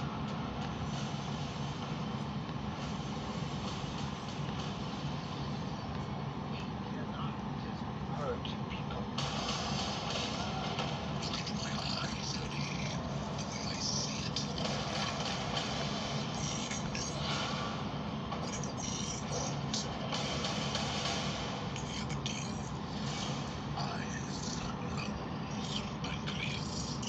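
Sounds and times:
steady hiss: 0.0s - 27.0s
indistinct voices: 5.5s - 27.0s.

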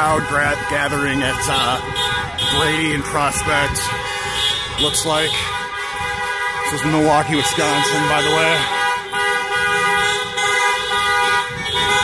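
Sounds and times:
car horns honking: 0.0s - 12.0s.

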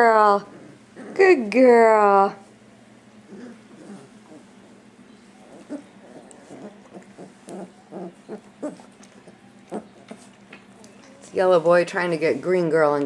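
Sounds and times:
puppies whimpering and grunting: 3.2s - 11.4s.

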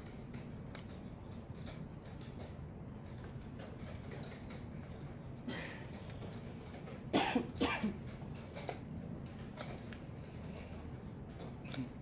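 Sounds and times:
person coughing: 7.1s - 8.0s.

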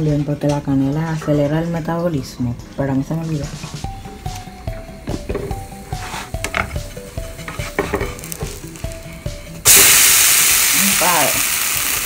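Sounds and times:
quiet stepped melody: 3.3s - 9.6s
pancake sizzling in a pan: 7.2s - 12.0s.

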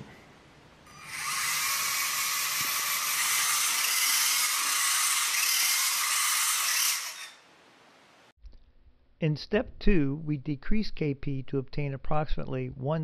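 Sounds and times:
robot motors whining: 0.9s - 7.4s.

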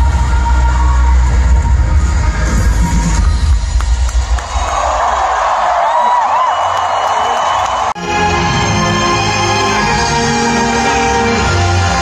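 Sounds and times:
crowd cheering and screaming: 0.0s - 12.0s
live metal band music: 8.0s - 12.0s.

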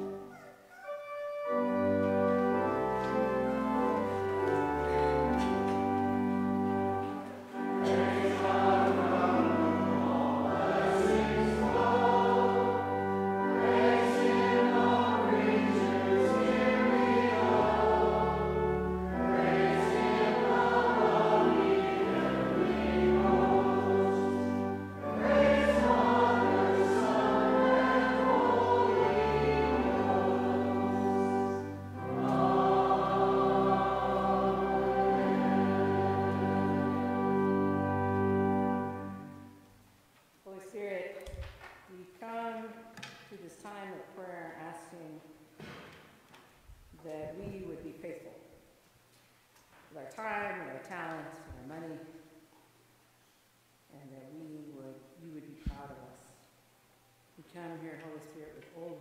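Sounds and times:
congregation singing a hymn: 0.0s - 39.6s
organ: 0.0s - 39.8s.

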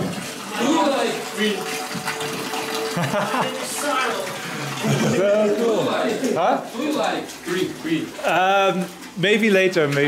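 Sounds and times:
liquid running and splashing: 0.0s - 10.0s.

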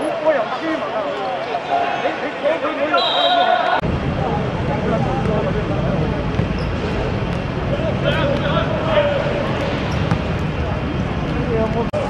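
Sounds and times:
steady urban hum: 3.7s - 12.0s
ball kicked on hard surface: 9.7s - 10.5s.

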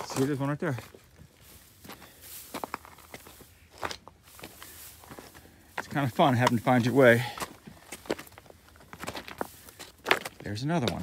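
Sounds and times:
footsteps on stones and gravel: 0.0s - 11.0s.

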